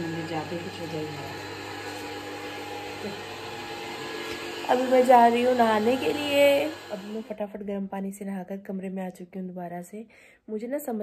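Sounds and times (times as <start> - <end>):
small electric motor whirring: 0.0 - 7.4.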